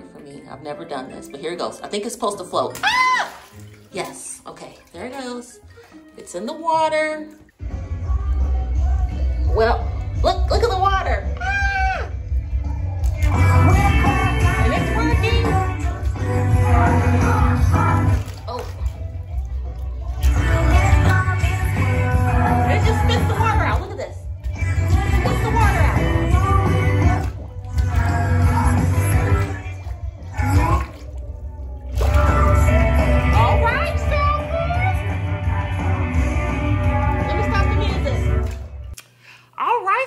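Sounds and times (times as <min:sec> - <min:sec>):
rock pop song through speaker: 0:06.2 - 0:39.0.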